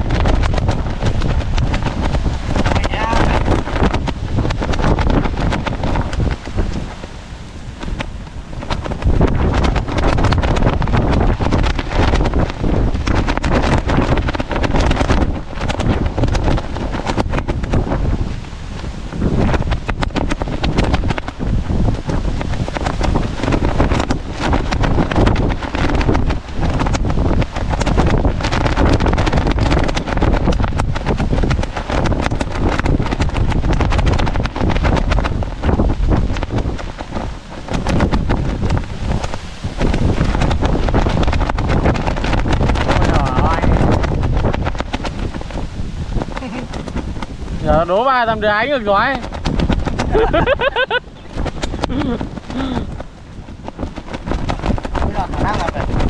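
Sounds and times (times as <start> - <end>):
gusty wind buffeting microphone: 0.0 - 56.0.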